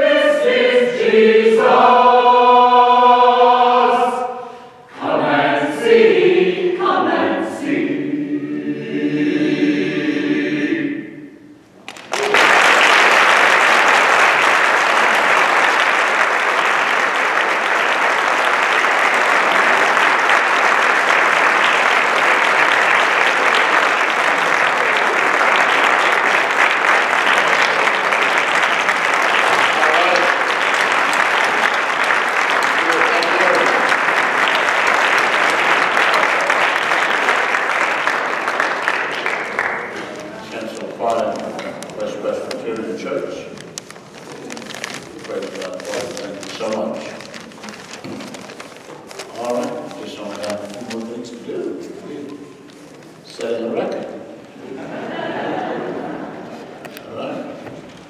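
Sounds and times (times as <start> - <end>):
choir singing a chord: 0.0 - 11.6
audience applause: 11.9 - 51.3, 54.4 - 57.3.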